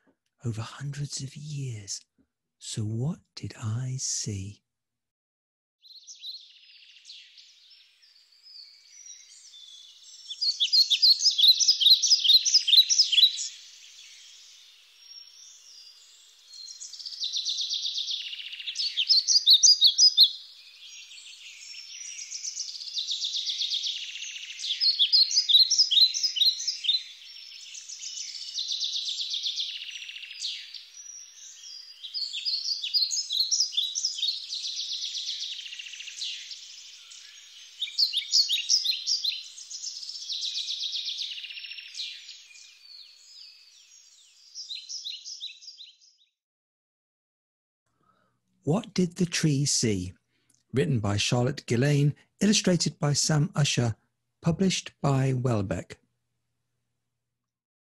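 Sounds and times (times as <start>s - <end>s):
songbird chirping phrases: 0.0s - 2.0s, 2.6s - 4.6s, 5.8s - 46.4s, 48.7s - 50.2s, 50.8s - 56.0s
faint background birdsong: 0.0s - 4.6s, 5.8s - 46.4s, 47.9s - 56.0s.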